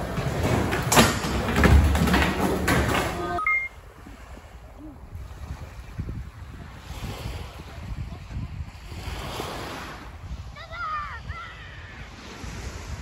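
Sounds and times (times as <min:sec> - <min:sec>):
skateboards clacking: 0:00.0 - 0:03.7
skateboards rolling on concrete: 0:00.0 - 0:03.7
small waves: 0:03.1 - 0:13.0
wind on a beach: 0:03.2 - 0:13.0
short beep: 0:03.4 - 0:03.8.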